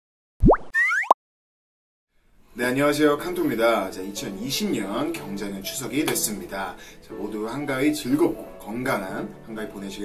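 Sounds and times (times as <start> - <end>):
cartoon pop sweeping up: 0.4 - 1.2.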